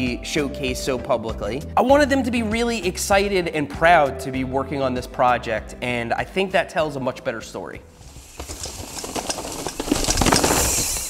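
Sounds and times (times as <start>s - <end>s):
bike clicks and rattles: 8.0s - 11.0s
bike tyres crunching through leaves: 8.0s - 11.0s.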